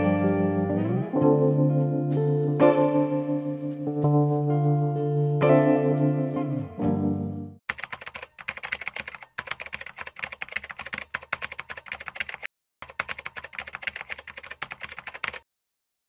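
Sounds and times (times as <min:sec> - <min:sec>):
computer keyboard typing: 0:07.7 - 0:15.4.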